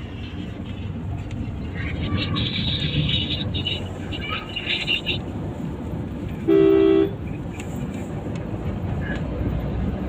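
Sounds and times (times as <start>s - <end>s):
engine and road noise in car: 0.0s - 10.0s
car horn toot: 6.4s - 7.2s.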